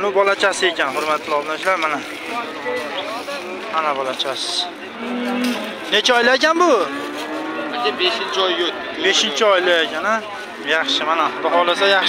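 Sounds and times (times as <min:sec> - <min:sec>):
cow mooing: 0:04.9 - 0:05.8, 0:06.8 - 0:08.5.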